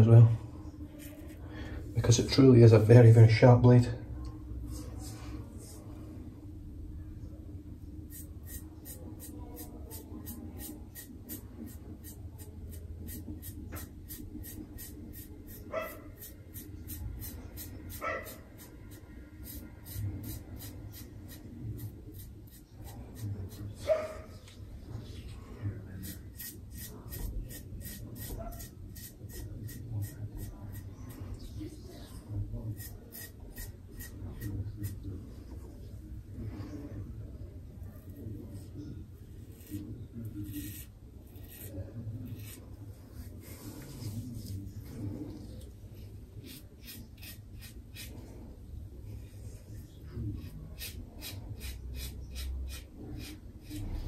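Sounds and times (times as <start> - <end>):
razor scraping across scalp: 8.1 - 23.7, 25.9 - 30.9, 32.7 - 35.0, 39.4 - 39.8, 40.4 - 42.6, 46.4 - 48.2, 50.4 - 54.0.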